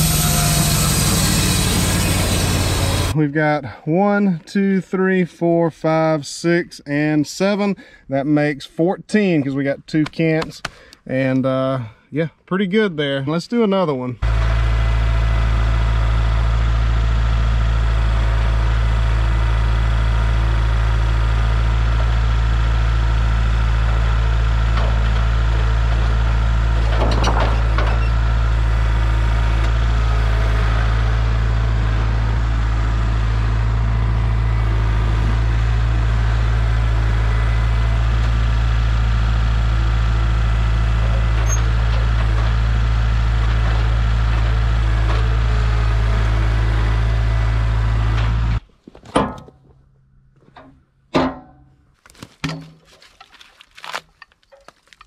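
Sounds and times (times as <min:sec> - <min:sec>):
tractor diesel engine running: 0:00.0 - 0:04.4, 0:14.2 - 0:48.7.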